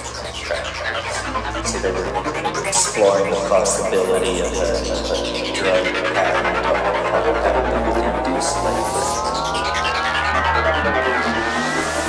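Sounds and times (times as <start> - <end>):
low steady drone: 0.0 - 12.0
synthesizer riser: 0.0 - 12.0.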